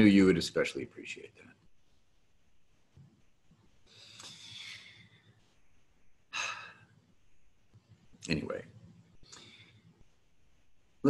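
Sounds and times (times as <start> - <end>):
man breathy exhale: 3.9 - 5.1, 6.3 - 6.8.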